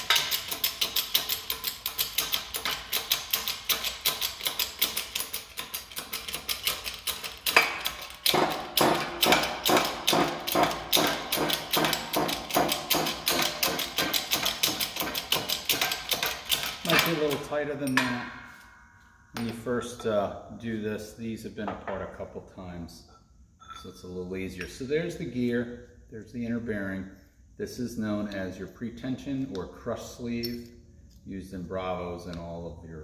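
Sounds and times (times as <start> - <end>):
sharp crack of metal: 0.0 - 18.6.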